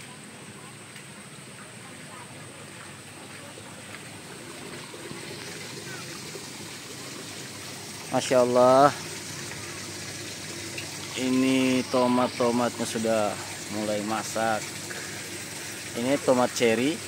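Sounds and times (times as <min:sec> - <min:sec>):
water trickling through pipes: 0:00.0 - 0:17.0
thin high tone: 0:11.1 - 0:14.6.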